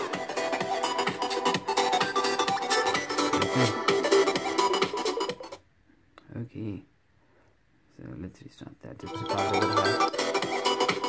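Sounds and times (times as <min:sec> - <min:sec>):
electronic dance music from speaker: 0:00.0 - 0:05.6, 0:09.0 - 0:11.0.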